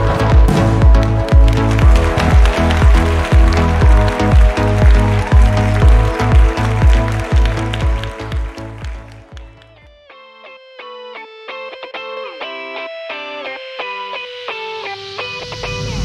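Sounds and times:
music with pounding beat: 0.0 - 10.0.

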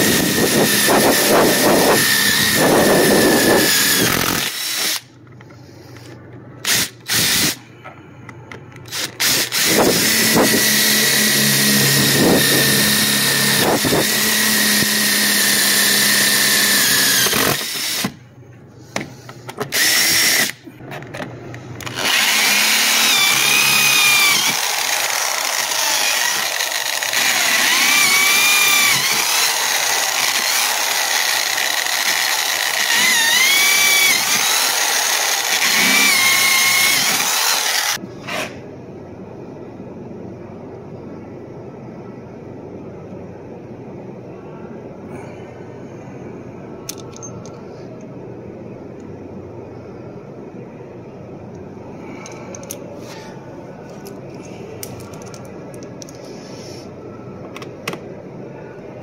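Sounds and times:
power drill boring into metal: 0.0 - 5.1, 6.6 - 7.6, 8.9 - 18.2, 19.7 - 20.6, 21.8 - 38.0.

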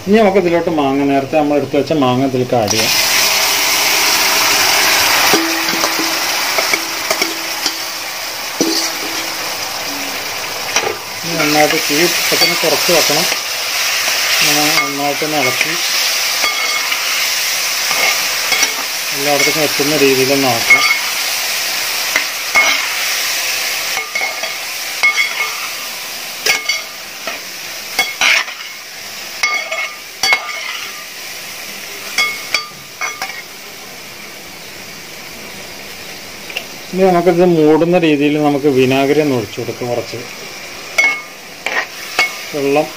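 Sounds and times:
spices sizzling in hot oil: 0.0 - 42.9
spoon scraping and clinking on pan: 5.3 - 8.0, 8.6 - 9.3, 10.8 - 13.5, 14.1 - 17.1, 17.9 - 19.6, 20.7 - 21.1, 24.0 - 25.7, 26.4 - 27.4, 28.0 - 28.8, 29.4 - 31.0, 41.0 - 42.4.

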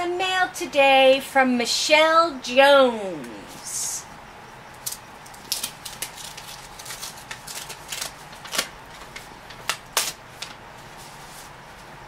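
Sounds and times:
paper envelope tearing: 5.4 - 10.6
paper rustling: 5.4 - 12.0.

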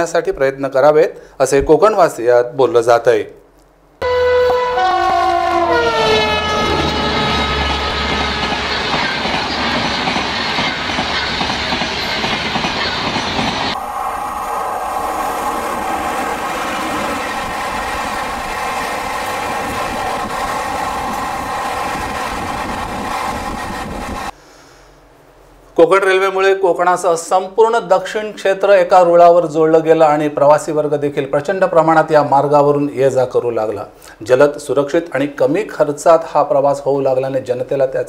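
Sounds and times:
train horn: 4.0 - 9.9
rumble of passing train coaches: 4.0 - 24.4
train wheels on rails: 5.8 - 24.4.

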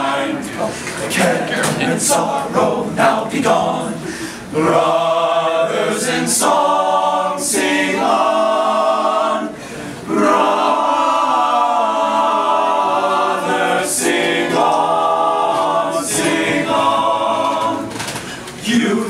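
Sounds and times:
male chorus singing in harmony: 0.0 - 19.0.

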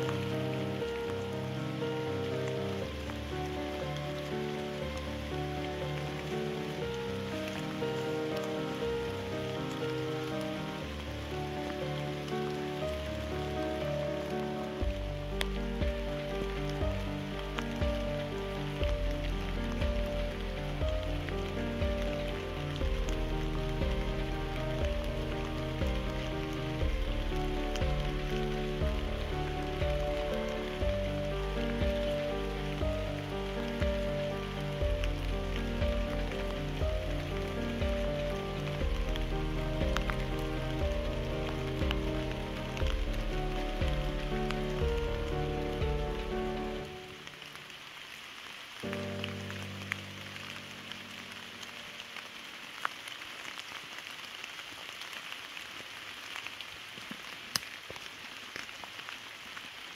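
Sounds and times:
slow background music: 0.0 - 55.6
single raindrops ticking: 0.0 - 59.9
steady rain: 0.0 - 59.9.

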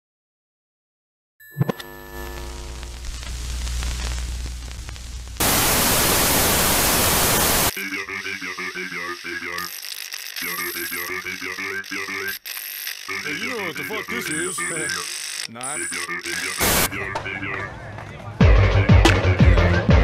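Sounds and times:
white-noise static burst: 2.0 - 7.8, 16.4 - 16.9
warbling glitch sound: 5.4 - 17.0.

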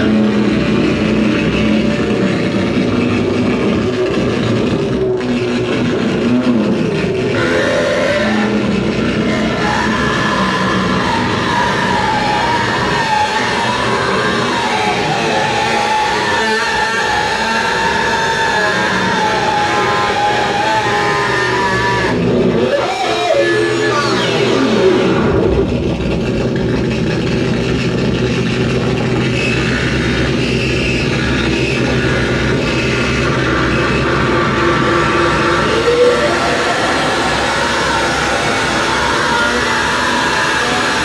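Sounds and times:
distorted harsh noise: 0.0 - 41.0
wavering siren-like whine: 7.3 - 26.6, 29.2 - 41.0.

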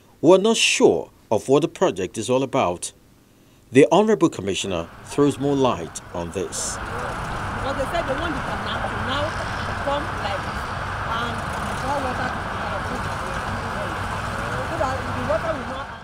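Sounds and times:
distant road traffic: 4.3 - 16.0
faint voices talking: 5.1 - 16.0.

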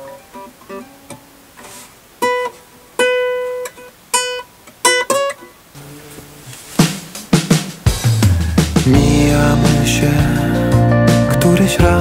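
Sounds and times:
plucked classical guitar notes: 0.0 - 1.6, 2.2 - 6.9.

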